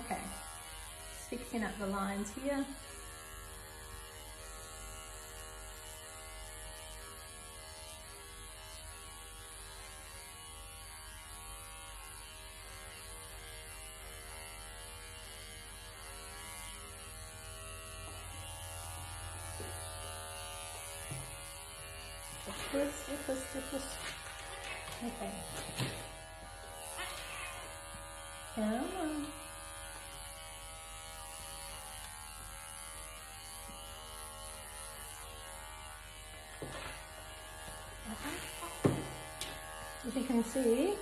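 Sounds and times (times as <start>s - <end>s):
electric clipper humming: 0.0s - 41.0s.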